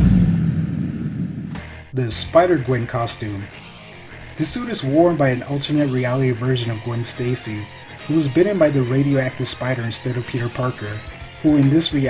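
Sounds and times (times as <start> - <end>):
deep cinematic rumbling hit: 0.0 - 1.9.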